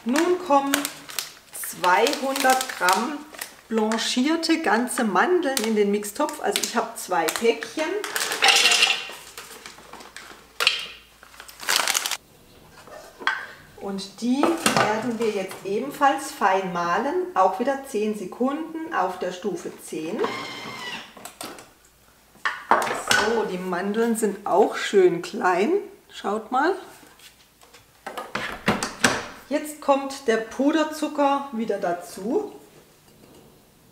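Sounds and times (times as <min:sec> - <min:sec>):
plastic packets rustling: 0:00.0 - 0:04.3, 0:05.4 - 0:12.2.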